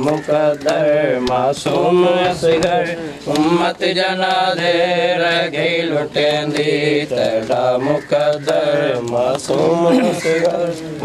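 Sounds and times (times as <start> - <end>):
rhythmic chest slaps: 0.0 - 11.0
man chanting a lament: 4.9 - 11.0.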